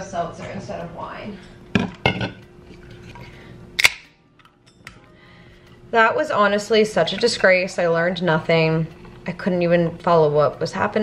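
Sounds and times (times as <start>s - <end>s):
can tab snapping open: 3.8s - 4.5s.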